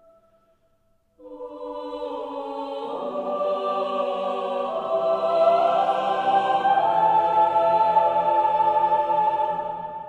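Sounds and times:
choir singing sustained chords: 1.2 - 10.0.

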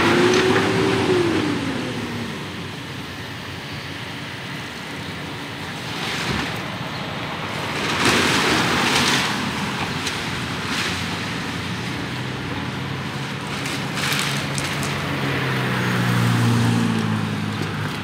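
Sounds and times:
passing traffic: 0.0 - 18.0.

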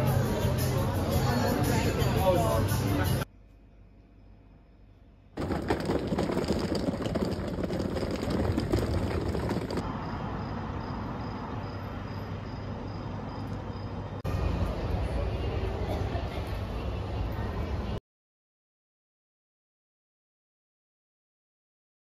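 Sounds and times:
noisy background: 0.0 - 3.4.

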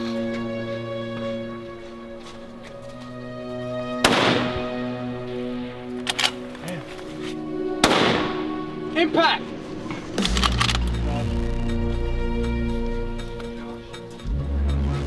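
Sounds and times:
background music sustained tones: 0.0 - 15.0
rifle shots echoing: 4.0 - 4.8, 7.8 - 8.6.

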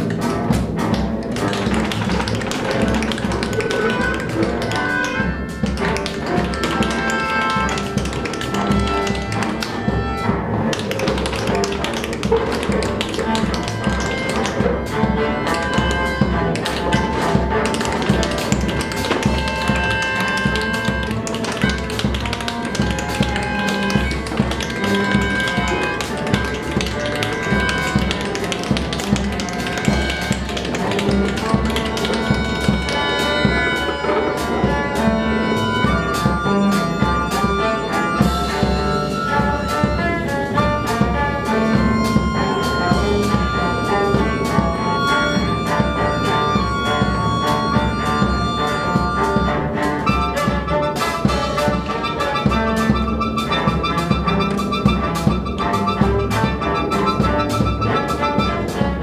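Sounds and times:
bowed cello: 0.0 - 59.0
drums: 0.0 - 59.0
quick sharp taps: 0.1 - 9.9, 15.5 - 33.0.

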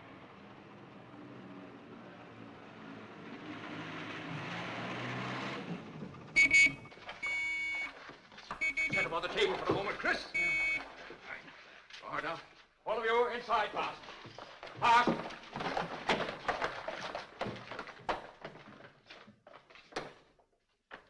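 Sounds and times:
shrill alarm-like tone: 6.4 - 7.9, 10.4 - 10.8.

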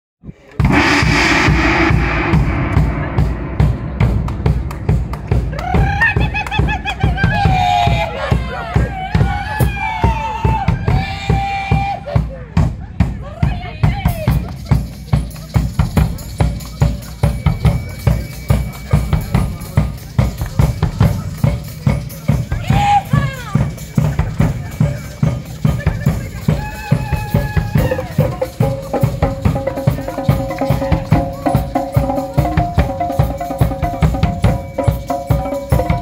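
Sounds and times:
concert bass drum: 0.6 - 8.5
tambourine: 14.1 - 36.0
drum kits playing groove: 28.3 - 36.0.

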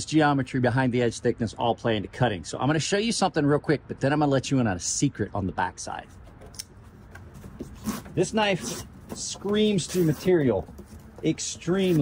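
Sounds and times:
knife swishing through cardboard: 7.4 - 12.0.

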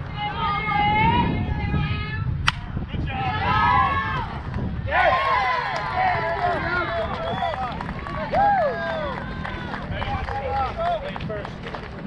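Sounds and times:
people shouting and cheering: 2.9 - 11.5.

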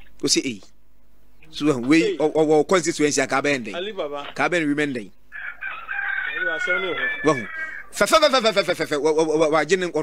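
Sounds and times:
rooster crowing: 5.3 - 8.0.

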